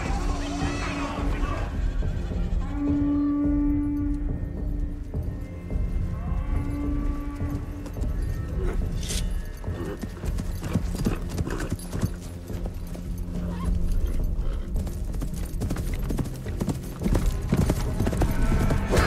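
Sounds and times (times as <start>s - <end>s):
horse hoofbeats: 0.0s - 19.0s.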